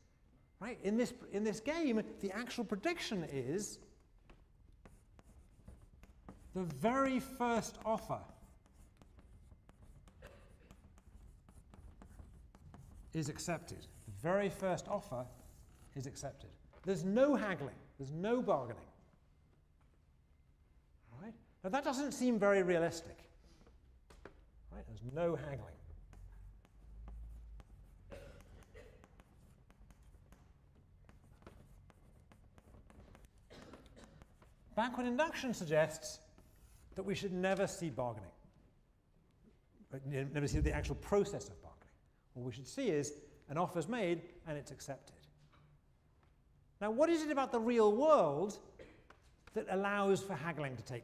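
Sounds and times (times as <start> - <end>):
chalk scratching on blackboard: 2.4 - 16.6, 24.9 - 37.8.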